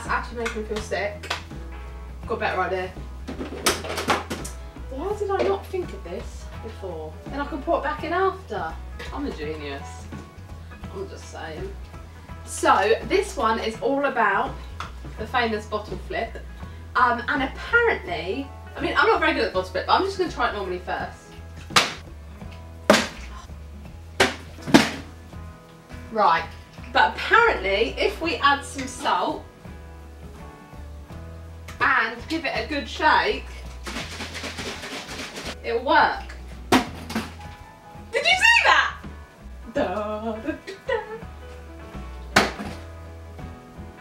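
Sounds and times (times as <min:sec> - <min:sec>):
background music: 0:00.0 - 0:44.0
plastic bottle landing on worktop: 0:03.3 - 0:04.5, 0:21.7 - 0:22.0, 0:22.9 - 0:23.3, 0:24.2 - 0:25.1, 0:36.7 - 0:37.4, 0:42.4 - 0:42.8
plastic bottle knocking on counter: 0:42.4 - 0:42.8.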